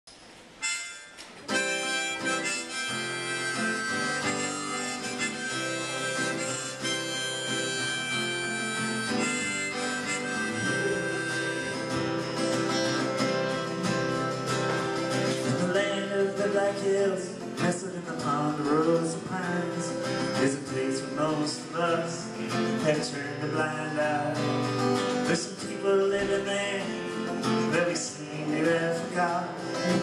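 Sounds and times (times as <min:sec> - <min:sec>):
acoustic guitar: 0:00.1 - 0:30.0
harmonica: 0:00.6 - 0:29.0.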